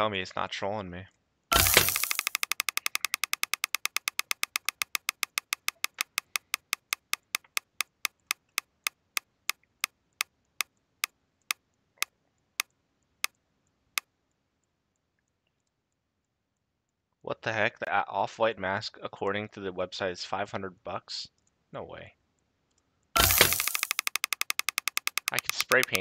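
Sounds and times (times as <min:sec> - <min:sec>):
rapid spinner ticks: 0:01.5 - 0:10.8, 0:23.1 - 0:26.0.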